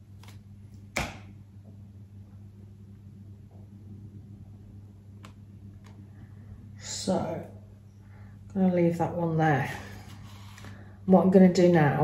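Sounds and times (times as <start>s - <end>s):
low room tone hum: 0.0s - 12.0s.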